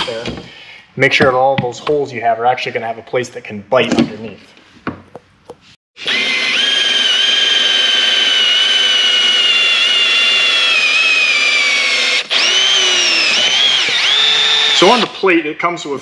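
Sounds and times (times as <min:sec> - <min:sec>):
cordless drill whining: 0:06.0 - 0:15.2.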